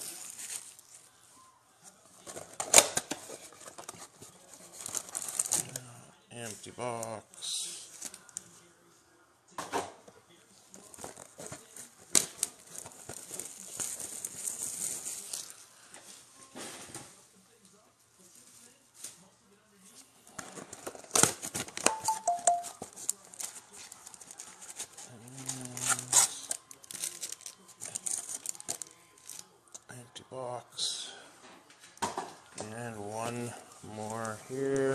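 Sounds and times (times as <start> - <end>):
foil packs crinkling: 2.2 - 5.8, 10.8 - 15.7, 22.8 - 29.5.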